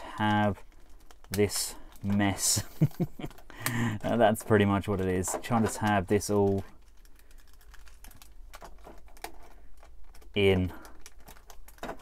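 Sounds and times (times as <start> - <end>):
plastic panels clicking: 3.3 - 12.0.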